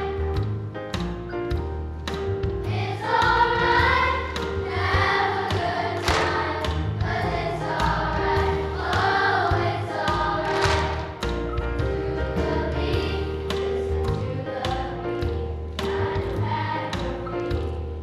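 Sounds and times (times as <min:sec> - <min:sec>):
children's choir singing jazz: 0:00.0 - 0:18.0
instrumental backing with bass: 0:00.0 - 0:18.0.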